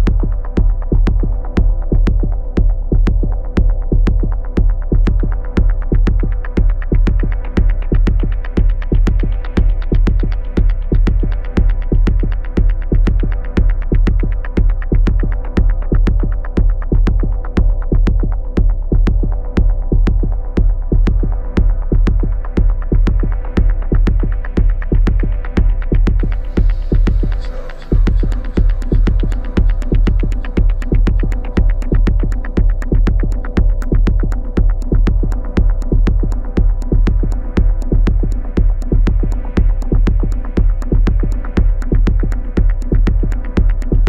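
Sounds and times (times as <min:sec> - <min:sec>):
techno music: 0:00.0 - 0:44.0.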